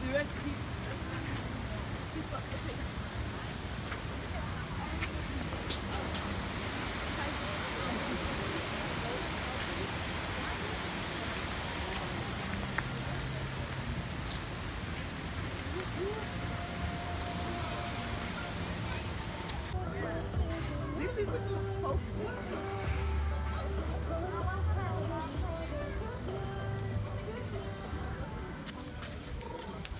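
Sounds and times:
faint voices: 0.0 - 29.9
water rushing over rocks: 2.9 - 19.8.

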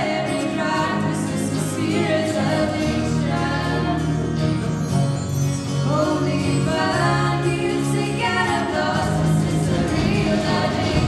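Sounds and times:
women singing: 0.0 - 4.6, 5.8 - 11.0
live pop band playing: 0.0 - 11.0.

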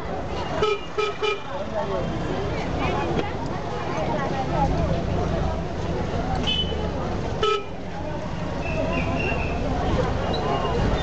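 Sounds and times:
street crowd voices: 0.0 - 11.0.

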